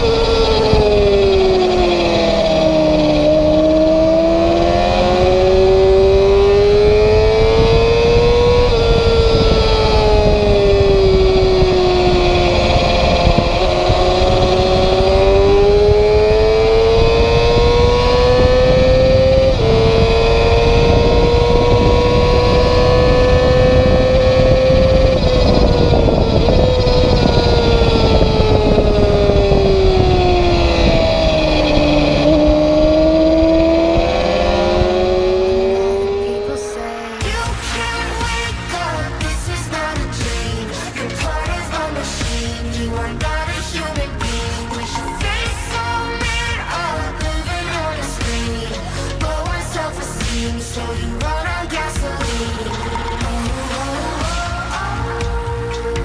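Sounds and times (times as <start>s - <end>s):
wind rush: 0.0s - 47.7s
motorcycle engine revving: 0.0s - 56.0s.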